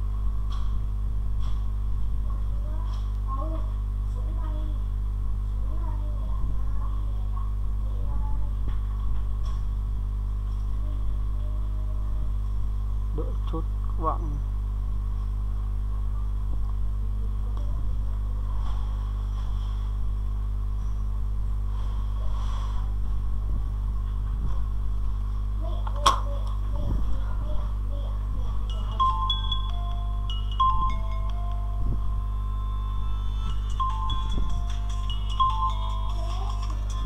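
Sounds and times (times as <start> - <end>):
electrical mains hum: 0.0 - 37.0.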